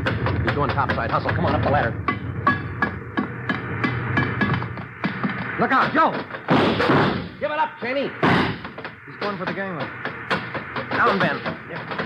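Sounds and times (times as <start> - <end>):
steady low drone: 0.0 - 5.6.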